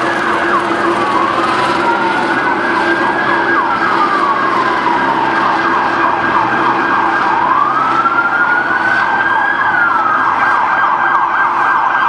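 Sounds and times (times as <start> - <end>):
emergency sirens wailing: 0.0 - 12.0.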